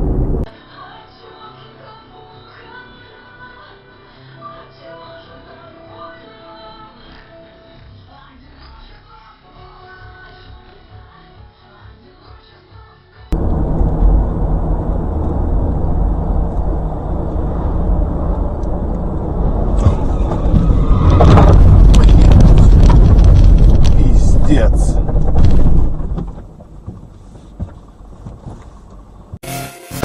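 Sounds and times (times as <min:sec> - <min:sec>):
road and engine rumble: 0:00.0 - 0:00.5, 0:13.3 - 0:29.4
rapid clattering knocks: 0:18.6 - 0:29.0.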